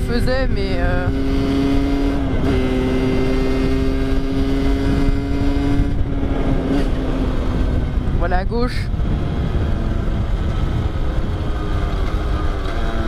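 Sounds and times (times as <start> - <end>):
two-stroke engine cruising: 0.0 - 13.0
wind rumble on microphone: 0.0 - 13.0.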